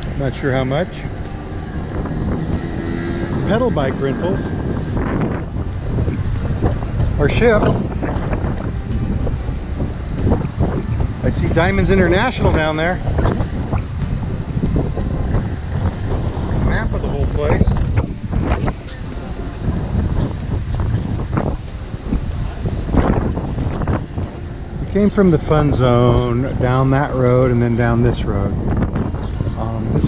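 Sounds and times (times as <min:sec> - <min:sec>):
car traffic road noise: 0:00.0 - 0:30.0
wind buffeting microphone: 0:00.0 - 0:30.0
scooter engine passing by: 0:00.4 - 0:07.2.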